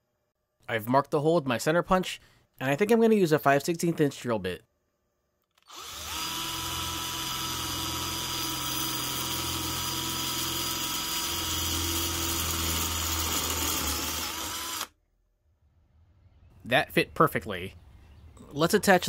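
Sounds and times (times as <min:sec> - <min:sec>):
power drill drilling through metal: 0:05.6 - 0:14.9.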